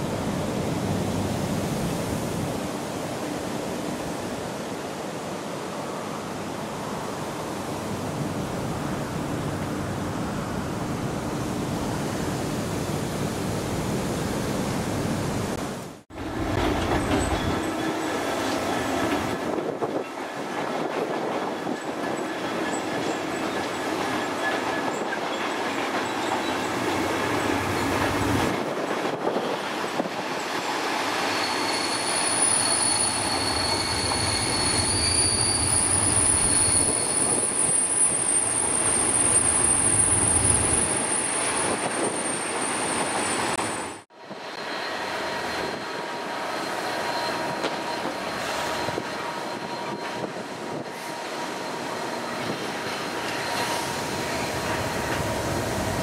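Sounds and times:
train wheel and rail noise: 0:00.0 - 0:56.0
high wheel squeal: 0:31.0 - 0:55.4.

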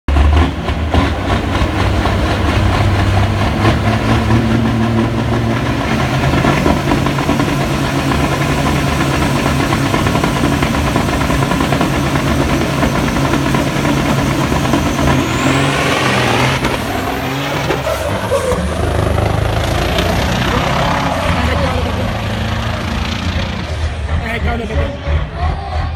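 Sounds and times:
truck engines droning at high revs: 0:00.0 - 0:25.9
high engine whine: 0:00.1 - 0:25.9.

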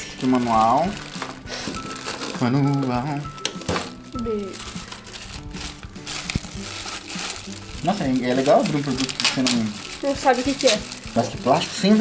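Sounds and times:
background music: 0:00.0 - 0:12.0
plastic packaging crinkling: 0:00.2 - 0:12.0.

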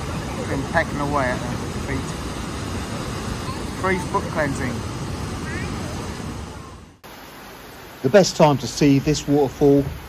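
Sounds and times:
steady rain hiss: 0:00.0 - 0:10.0
water rushing over rocks: 0:00.0 - 0:10.0.

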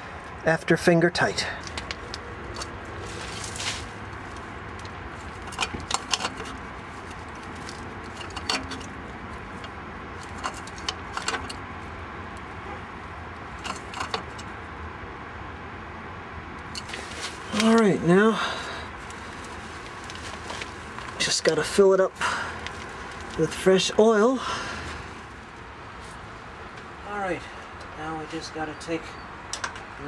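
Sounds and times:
wrench clinking on oil filter: 0:05.4 - 0:11.6, 0:13.6 - 0:14.5.

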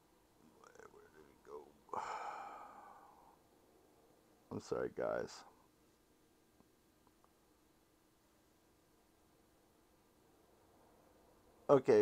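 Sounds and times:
man sighing: 0:01.9 - 0:03.4.

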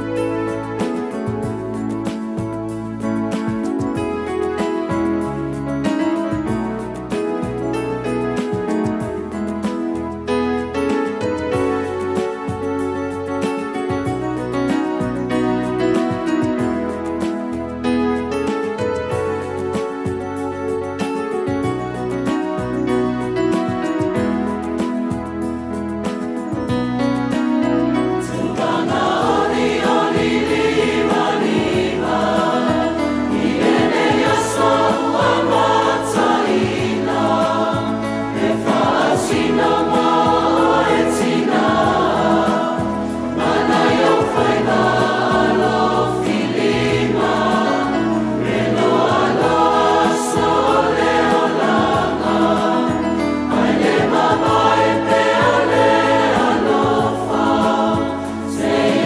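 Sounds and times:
mixed choir singing in harmony: 0:27.5 - 0:59.0.

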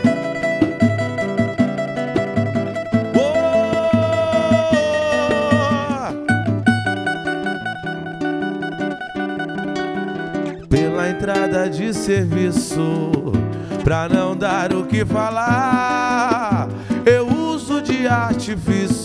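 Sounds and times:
acoustic guitar: 0:00.0 - 0:19.0
samba percussion beat: 0:00.0 - 0:19.0
strummed cavaquinho: 0:00.0 - 0:19.0.

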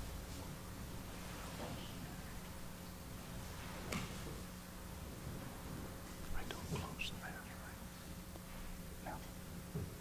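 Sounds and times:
steady low hum: 0:00.0 - 0:10.0
people whispering: 0:06.4 - 0:07.9.

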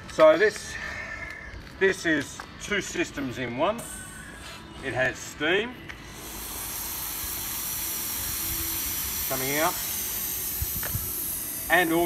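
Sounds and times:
steam hissing from nozzle: 0:06.0 - 0:12.0.

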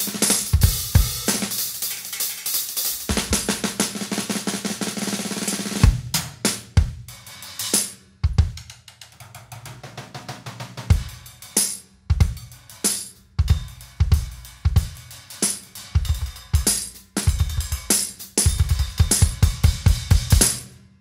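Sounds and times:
bass drum and cymbal hits: 0:00.0 - 0:04.6, 0:10.8 - 0:20.7
drum kit playing: 0:00.0 - 0:20.8.

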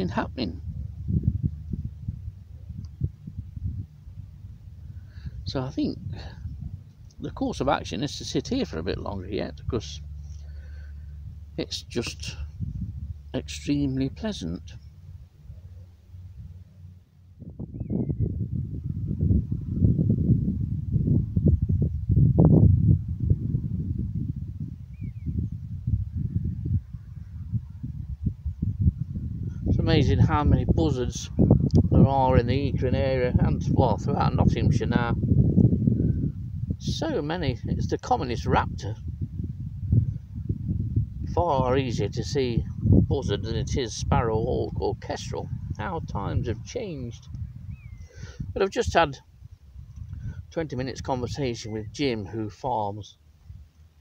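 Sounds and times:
wind buffeting microphone: 0:00.0 - 0:52.6, 0:53.2 - 0:54.0.

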